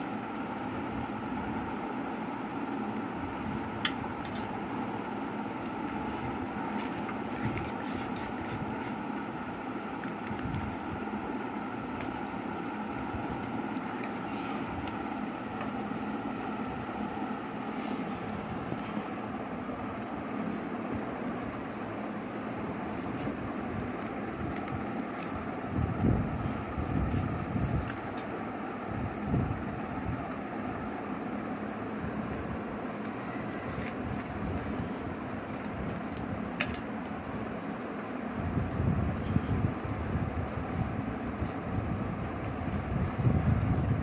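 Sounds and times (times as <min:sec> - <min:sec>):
steady background hum: 0:00.0 - 0:44.0
scissors snipping paper: 0:02.8 - 0:17.5, 0:18.2 - 0:28.4, 0:32.9 - 0:44.0.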